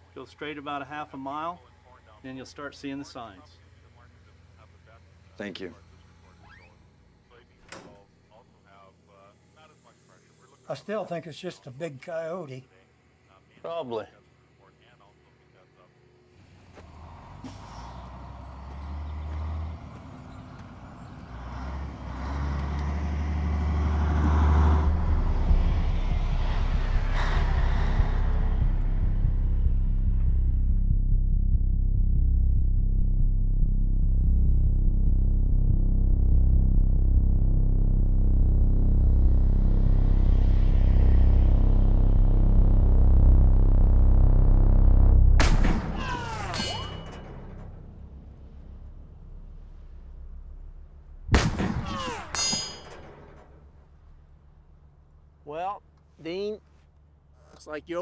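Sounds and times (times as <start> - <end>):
diesel truck engine rumbling: 16.4 - 56.0
sharp metallic cracks: 45.4 - 54.2.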